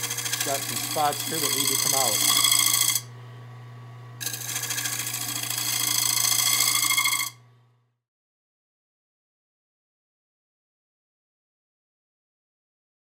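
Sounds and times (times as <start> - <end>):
gouge scraping wooden bowl: 0.0 - 3.0, 4.2 - 7.4
wood lathe motor humming: 0.0 - 3.1, 4.2 - 7.5.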